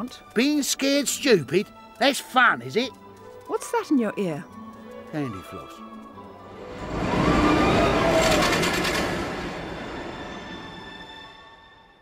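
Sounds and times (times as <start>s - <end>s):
passing vehicle rumble: 6.2s - 11.5s.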